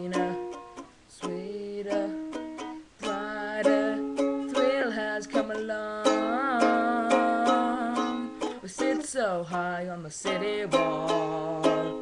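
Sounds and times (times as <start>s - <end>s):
acoustic string instrument strumming: 0.0s - 12.0s.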